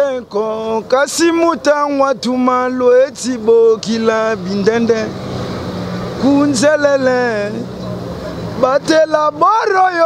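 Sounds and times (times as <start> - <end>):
man's voice: 0.0 - 5.2, 6.1 - 7.8, 8.5 - 10.0
low engine hum: 0.0 - 10.0
traffic noise: 0.0 - 10.0.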